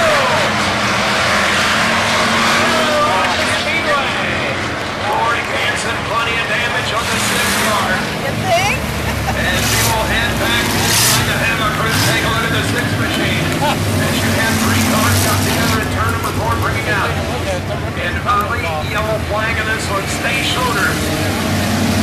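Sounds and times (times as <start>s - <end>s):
crowd voices chattering: 0.0s - 22.0s
race car engines: 0.0s - 22.0s.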